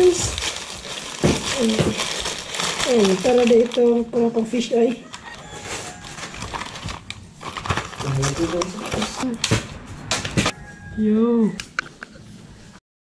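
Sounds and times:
cardboard packaging handled: 0.0 - 4.0, 5.0 - 9.4.

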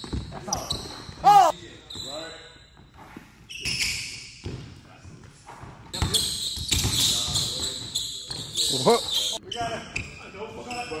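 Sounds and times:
basketball bouncing on hardwood floor: 0.0 - 0.9.

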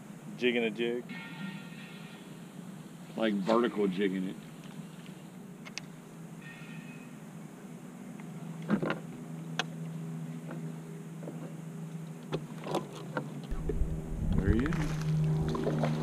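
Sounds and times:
electric motor humming: 13.5 - 16.0.

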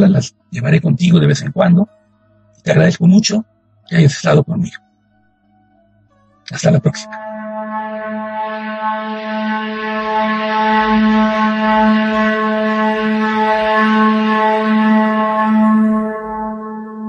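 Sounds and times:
held wind instrument note: 6.5 - 17.0.

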